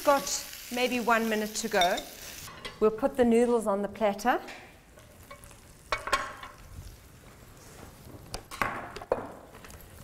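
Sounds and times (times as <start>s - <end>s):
utensils clinking against dishware: 1.8s - 2.8s.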